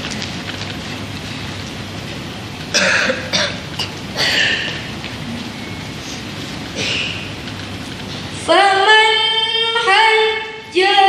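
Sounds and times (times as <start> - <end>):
steady background hiss: 0.0 - 11.0
woman clearing throat and coughing: 2.7 - 4.7, 6.7 - 7.3.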